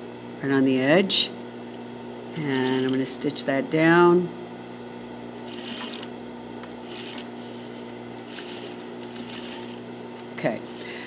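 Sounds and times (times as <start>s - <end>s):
sewing machine motor hum: 2.3s - 3.1s, 5.4s - 11.0s
sewing machine needle clatter: 8.3s - 9.8s.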